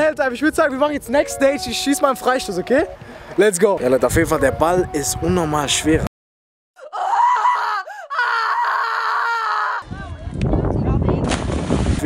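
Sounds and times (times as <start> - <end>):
wavering voice-like wail: 6.8 - 9.8.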